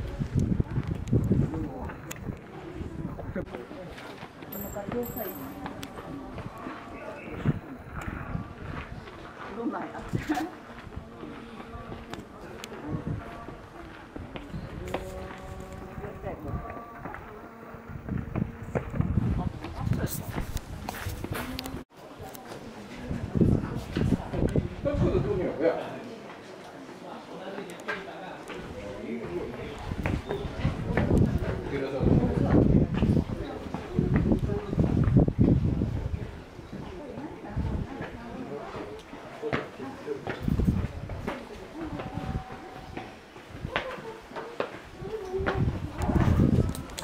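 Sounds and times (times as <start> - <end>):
people talking faintly: 0.0 - 47.0.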